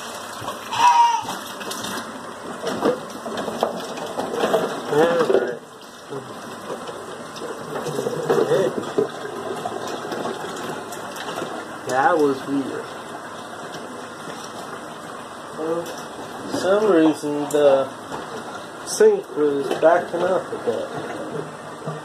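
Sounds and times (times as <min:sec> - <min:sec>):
drain gurgling: 0:00.0 - 0:22.0
water running in sink: 0:00.0 - 0:22.0.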